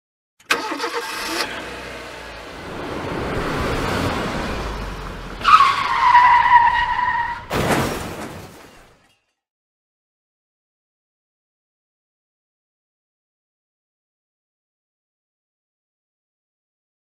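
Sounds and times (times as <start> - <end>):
car running and passing: 0.6 - 7.5
car crash: 2.8 - 9.4
tyre screech: 5.4 - 7.5.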